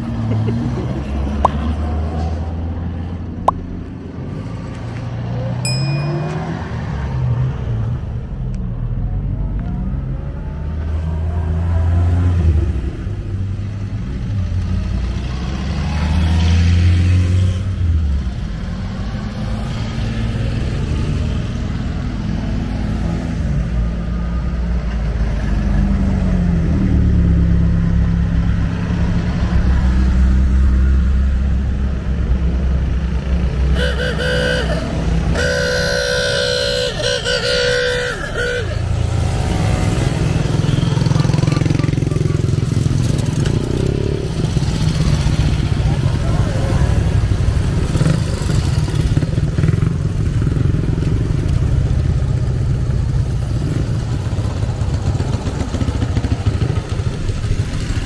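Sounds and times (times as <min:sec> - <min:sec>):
cars driving past: 0:00.0 - 0:58.0
car horn toots: 0:33.7 - 0:39.0.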